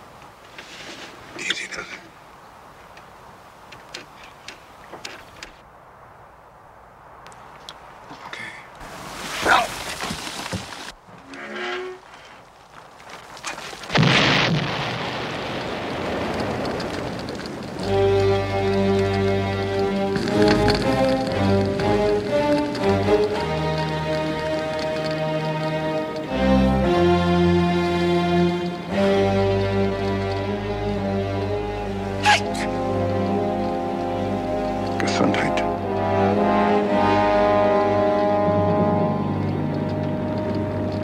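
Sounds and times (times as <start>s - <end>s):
small creaks and knocks: 3.7s - 5.6s
loud explosion with rumbling tail: 14.0s - 16.9s
music: 17.8s - 41.0s.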